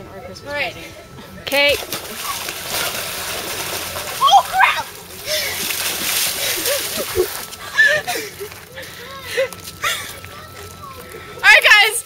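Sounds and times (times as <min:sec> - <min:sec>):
person splashing in water: 0:01.8 - 0:07.6.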